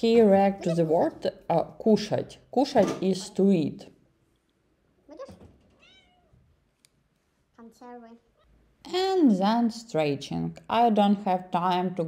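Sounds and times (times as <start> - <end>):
cat meowing: 5.1 - 6.4.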